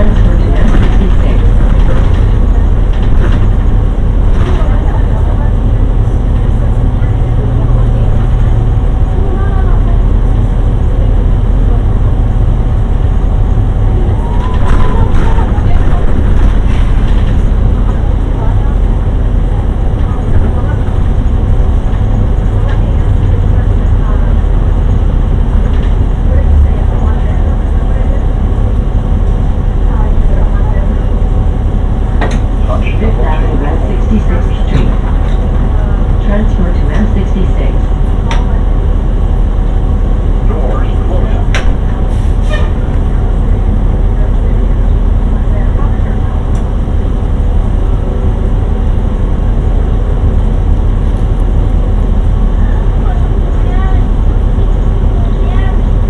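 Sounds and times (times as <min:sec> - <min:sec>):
bus engine rumble: 0:00.0 - 0:56.0
faint passenger voices: 0:00.0 - 0:56.0
road noise: 0:00.0 - 0:56.0.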